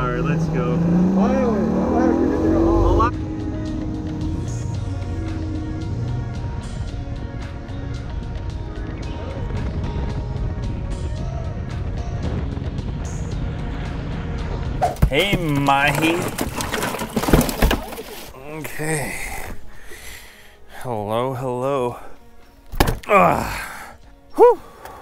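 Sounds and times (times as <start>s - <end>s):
outboard engines revving: 0.0s - 7.1s.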